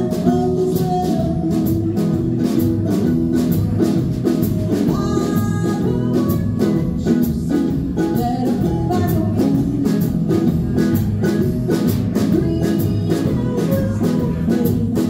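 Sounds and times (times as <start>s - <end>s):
drum kit beat: 0.0s - 15.0s
electric guitar: 0.0s - 15.0s
ukulele: 0.0s - 15.0s
upright bass: 0.0s - 15.0s.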